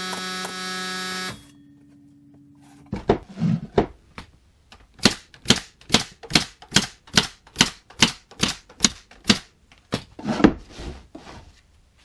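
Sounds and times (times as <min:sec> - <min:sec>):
pneumatic nail gun firing into wood: 0:00.0 - 0:01.5, 0:05.0 - 0:09.5.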